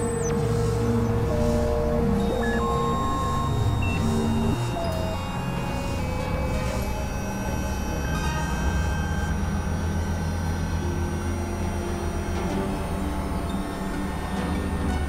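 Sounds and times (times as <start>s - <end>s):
held high synth tones: 0.0s - 9.4s
low synthesizer drone: 0.0s - 15.0s.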